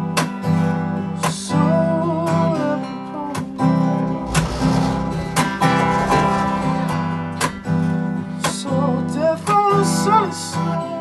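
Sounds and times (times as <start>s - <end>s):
acoustic guitar strumming chords: 3.6s - 10.7s.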